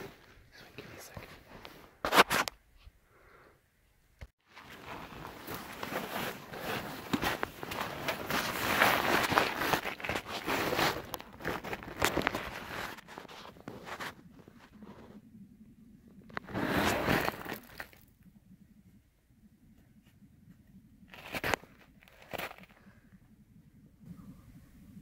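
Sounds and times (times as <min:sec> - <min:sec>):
snow crunching: 0:04.5 - 0:14.2, 0:16.5 - 0:18.0
twigs rustling against camera: 0:04.5 - 0:15.0.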